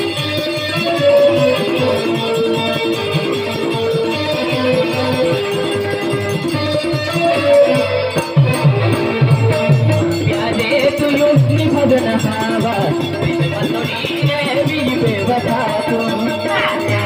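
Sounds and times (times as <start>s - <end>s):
folk dance music: 0.0s - 17.0s
rattling percussion: 0.0s - 17.0s
drum beat: 8.2s - 17.0s.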